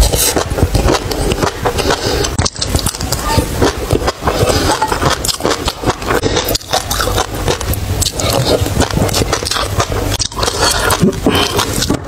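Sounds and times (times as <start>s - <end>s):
wet chewing: 0.0s - 12.0s.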